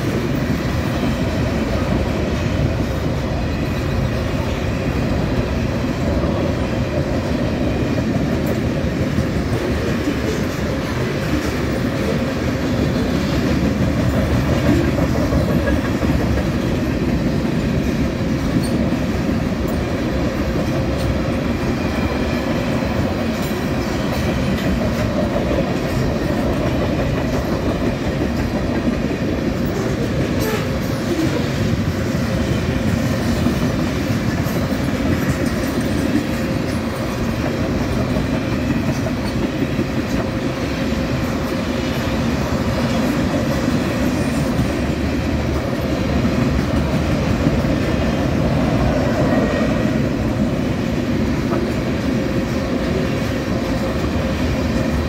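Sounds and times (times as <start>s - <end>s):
rail clicks: 0.0s - 55.0s
train wheels rumbling on rail: 0.0s - 55.0s.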